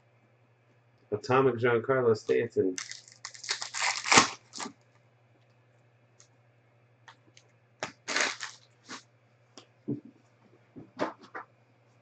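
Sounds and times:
trading cards rustling: 0:02.8 - 0:04.7, 0:07.8 - 0:09.0.

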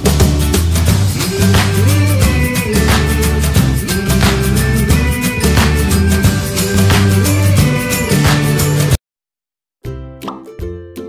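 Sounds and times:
background music: 0:00.0 - 0:09.0.

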